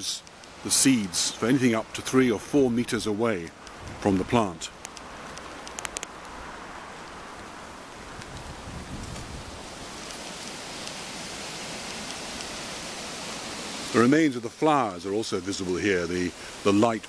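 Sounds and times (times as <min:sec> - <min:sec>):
steady outdoor hiss: 0:00.0 - 0:17.0.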